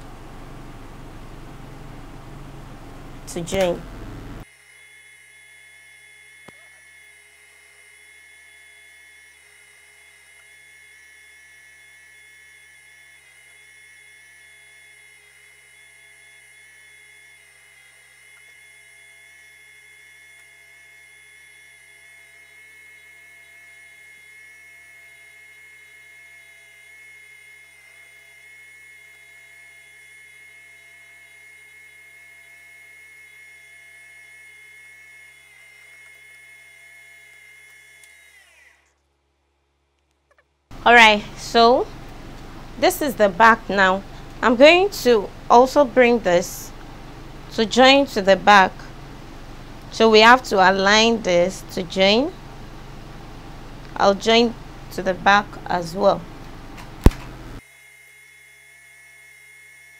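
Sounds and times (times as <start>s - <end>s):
sewing machine motor whining: 3.3s - 39.0s.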